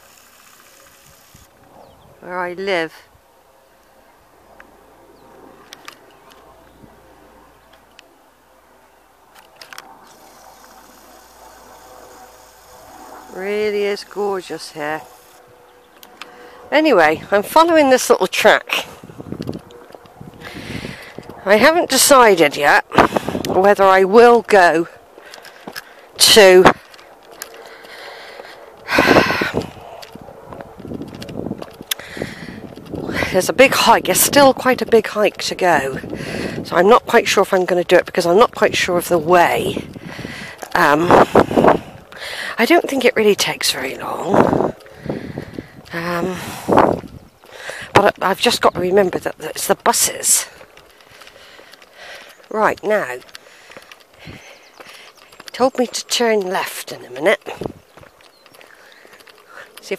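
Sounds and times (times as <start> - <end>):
faint steady hum: 0.0 - 21.5
footsteps on gravel: 12.7 - 59.9.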